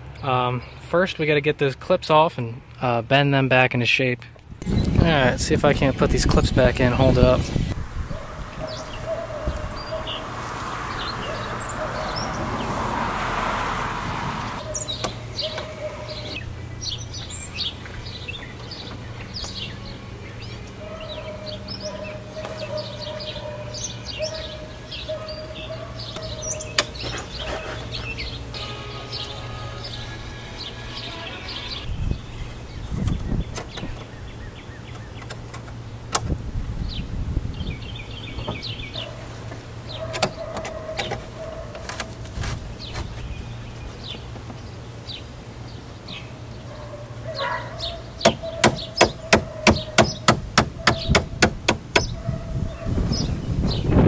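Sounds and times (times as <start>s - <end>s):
birds chirping and singing: 4.6s - 12.9s, 14.4s - 54.0s
rustling: 41.1s - 44.4s
board knocking against roof: 48.2s - 52.1s.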